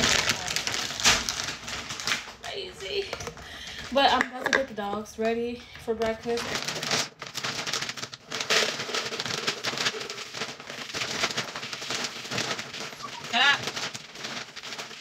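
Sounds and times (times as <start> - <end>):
dry kibble pouring into plastic container: 7.6 - 15.0.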